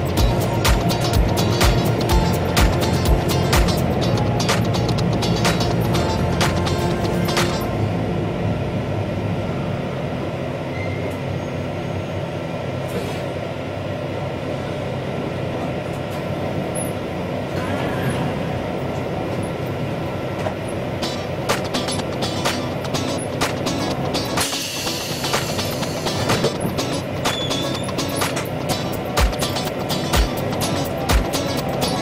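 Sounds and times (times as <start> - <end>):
electric train hum: 0.0 - 32.0.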